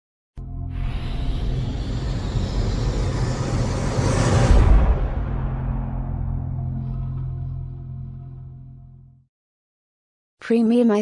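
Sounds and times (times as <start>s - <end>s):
whoosh: 0.8s - 8.2s
deep low rumble: 0.8s - 9.2s.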